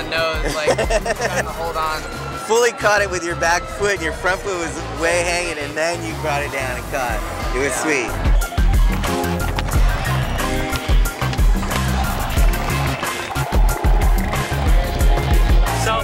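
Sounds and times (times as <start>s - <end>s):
skateboard rolling on concrete: 8.2s - 15.8s
music with heavy bass beat: 8.2s - 16.0s
skateboard striking ground: 8.8s - 12.0s.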